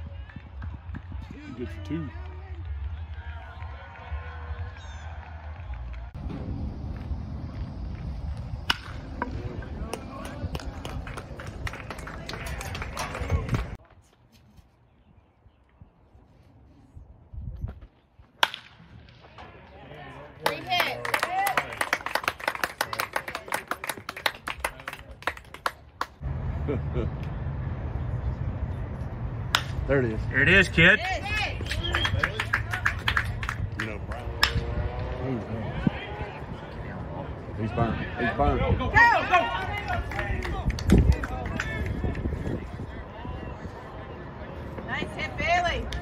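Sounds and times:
spectators shouting and cheering: 0:00.0 - 0:06.2, 0:30.4 - 0:46.0
baseball bat hitting ball: 0:08.6 - 0:10.4, 0:18.4 - 0:19.2, 0:29.5 - 0:29.8, 0:34.3 - 0:34.8
clapping: 0:09.8 - 0:13.8, 0:20.4 - 0:26.2, 0:31.0 - 0:34.6, 0:39.5 - 0:42.5.

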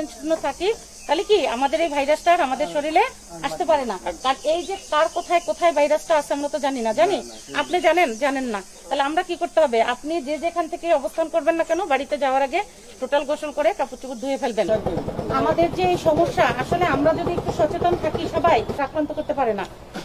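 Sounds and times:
steady background hiss: 0:00.0 - 0:17.1
woman talking: 0:00.0 - 0:19.7.

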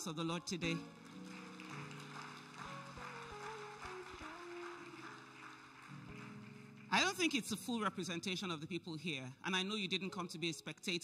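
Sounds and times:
congregation clapping and cheering: 0:00.6 - 0:07.9.

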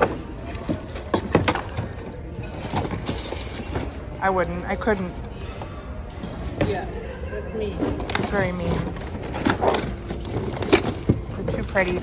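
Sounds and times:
goods clattering in a bin: 0:00.0 - 0:04.1, 0:07.8 - 0:12.0
faint background music: 0:00.0 - 0:12.0.

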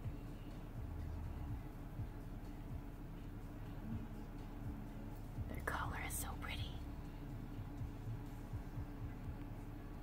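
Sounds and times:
steady low hum: 0:00.0 - 0:10.0
person whispering: 0:05.5 - 0:06.8.

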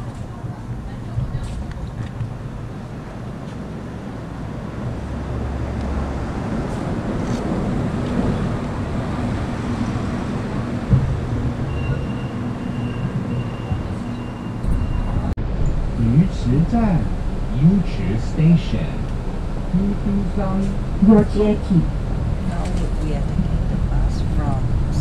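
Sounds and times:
vehicle engine humming: 0:00.0 - 0:25.0.

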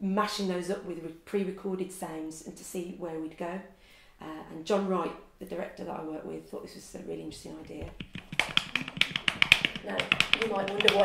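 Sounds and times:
rapid sharp clicks and taps: 0:07.3 - 0:11.0.

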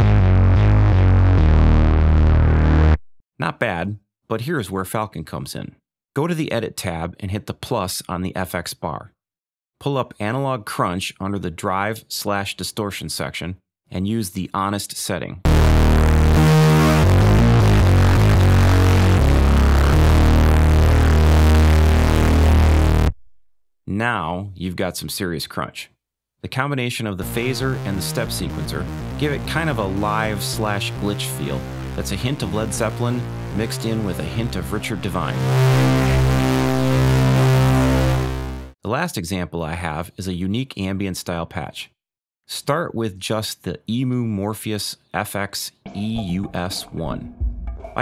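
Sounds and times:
gritty distorted synth riff: 0:00.0 - 0:03.0, 0:15.5 - 0:23.2, 0:27.2 - 0:38.8.

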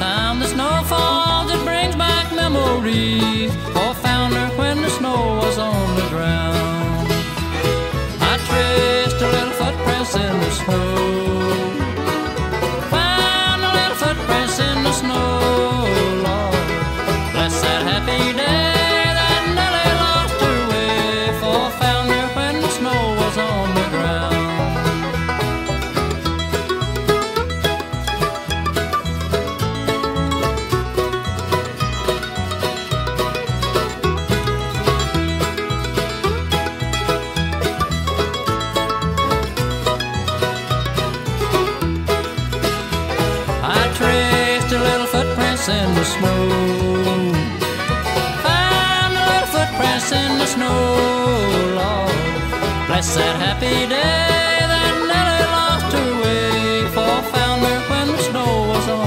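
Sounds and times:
banjo: 0:00.0 - 0:59.0
bass line: 0:00.0 - 0:59.0
guitar: 0:00.0 - 0:59.0
sliding lead melody: 0:00.0 - 0:59.0.

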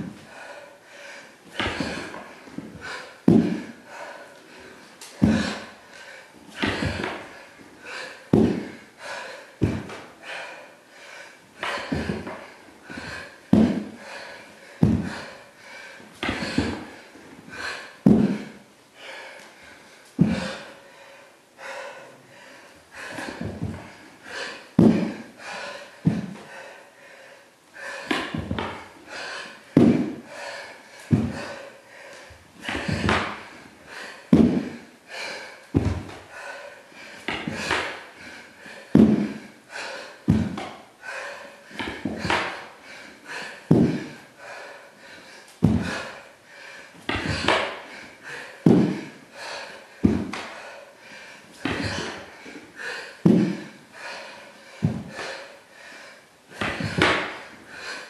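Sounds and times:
hard panting breaths: 0:00.0 - 0:58.0
thuds on hardwood floor: 0:01.6 - 0:03.7, 0:05.2 - 0:05.6, 0:06.6 - 0:07.3, 0:08.3 - 0:08.8, 0:09.6 - 0:10.0, 0:11.6 - 0:13.9, 0:14.8 - 0:15.3, 0:16.2 - 0:16.9, 0:18.0 - 0:18.5, 0:20.2 - 0:20.6, 0:23.2 - 0:24.0, 0:24.8 - 0:25.2, 0:26.0 - 0:26.4, 0:28.1 - 0:28.8, 0:29.8 - 0:30.2, 0:31.1 - 0:31.5, 0:32.6 - 0:33.5, 0:34.3 - 0:34.8, 0:35.7 - 0:36.2, 0:38.9 - 0:39.4, 0:40.3 - 0:40.7, 0:41.8 - 0:42.6, 0:43.7 - 0:44.1, 0:45.6 - 0:46.0, 0:47.1 - 0:47.8, 0:48.6 - 0:49.1, 0:50.0 - 0:50.4, 0:51.6 - 0:52.2, 0:53.2 - 0:53.7, 0:54.8 - 0:55.4, 0:56.6 - 0:57.4.

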